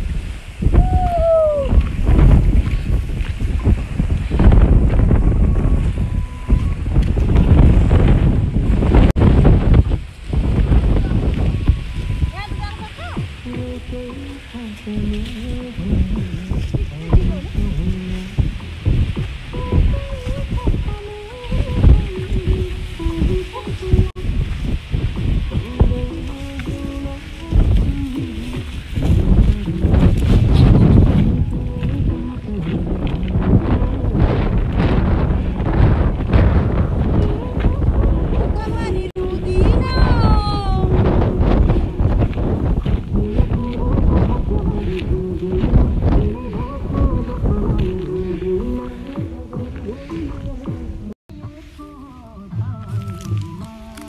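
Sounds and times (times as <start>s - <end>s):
wind buffeting microphone: 0.0s - 51.6s.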